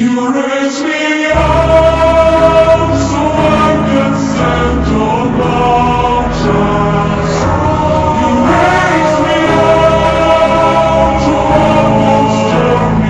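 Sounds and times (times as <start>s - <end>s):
choir singing in harmony: 0.0s - 13.0s
low bass accompaniment: 1.4s - 13.0s.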